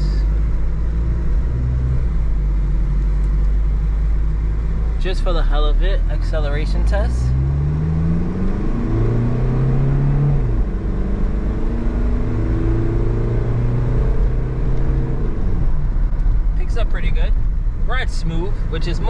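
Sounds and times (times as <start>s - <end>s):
diesel engine accelerating: 0.0s - 19.0s.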